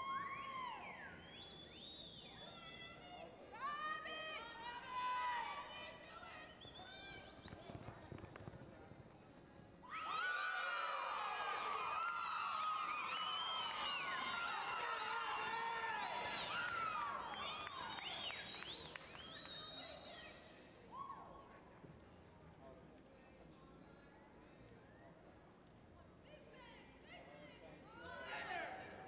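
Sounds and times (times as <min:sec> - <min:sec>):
crowd whooping and cheering: 0:00.0 - 0:01.3, 0:09.8 - 0:19.2.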